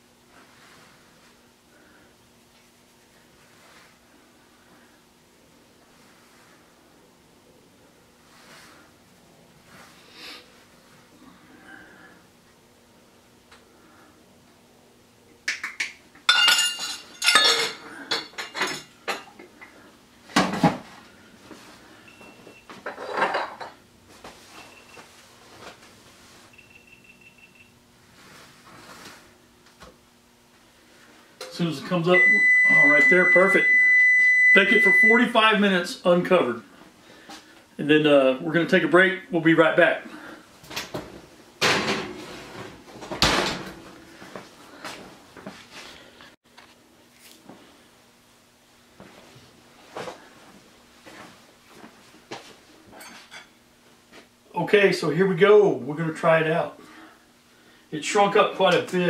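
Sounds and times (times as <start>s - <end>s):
utensils clattering on countertop: 16.3s - 19.4s, 22.8s - 23.8s
oven door shutting thud: 43.1s - 43.8s.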